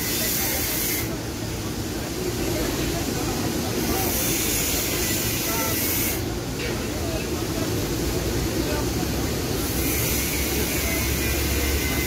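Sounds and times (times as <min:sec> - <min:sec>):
background street noise: 0:00.0 - 0:12.0.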